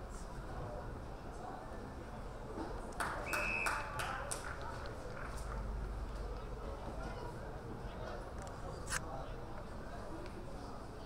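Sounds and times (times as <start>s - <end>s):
high whistle: 3.2s - 3.8s.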